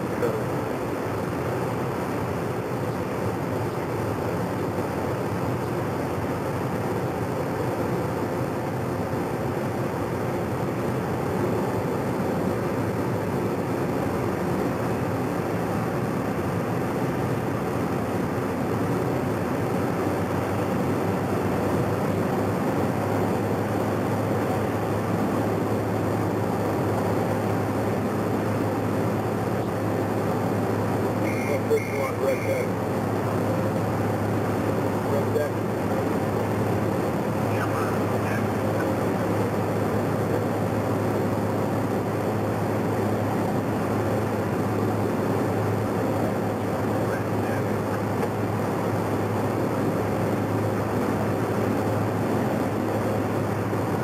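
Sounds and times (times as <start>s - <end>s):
helicopter running: 0.0s - 54.0s.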